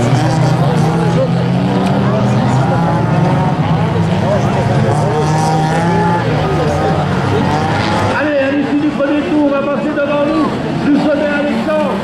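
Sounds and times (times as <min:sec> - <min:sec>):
race car engines revving: 0:00.0 - 0:12.0.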